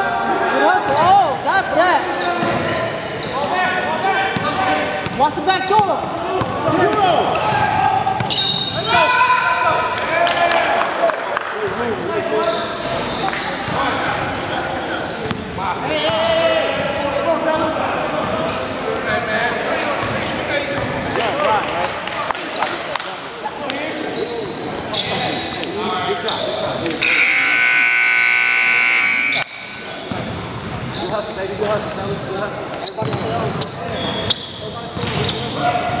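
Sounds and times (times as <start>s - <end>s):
voices chattering: 0.0s - 10.2s, 11.5s - 36.0s
scoreboard buzzer blast: 27.0s - 29.9s.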